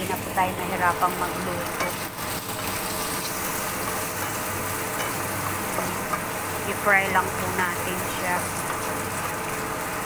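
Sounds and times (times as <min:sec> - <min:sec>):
tofu sizzling in hot oil: 0:00.0 - 0:10.0.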